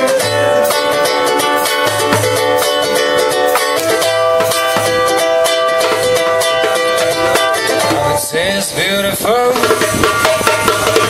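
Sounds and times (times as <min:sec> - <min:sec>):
djembe drumming: 0:00.0 - 0:08.3, 0:09.4 - 0:11.0
ukulele strumming: 0:00.0 - 0:11.0.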